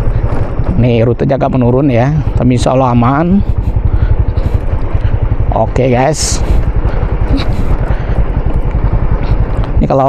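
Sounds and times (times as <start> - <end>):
motorcycle engine rumbling: 0.0 - 10.0.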